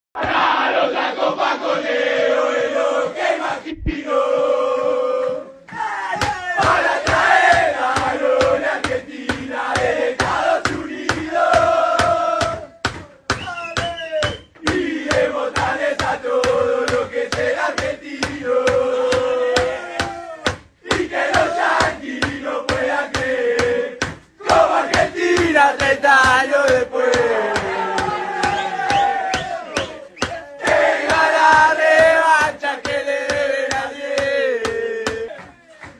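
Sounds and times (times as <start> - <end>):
men chanting in unison: 0.2 - 12.8, 14.6 - 35.5
thumping beat: 6.2 - 35.9.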